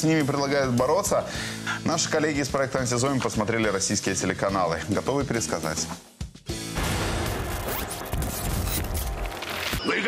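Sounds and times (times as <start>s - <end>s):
sharp hits: 6.7s - 9.5s.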